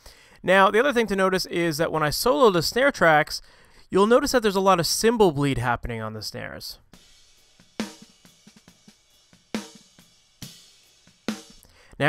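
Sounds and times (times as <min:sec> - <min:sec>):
cymbals and hi-hat: 0:06.8 - 0:11.8.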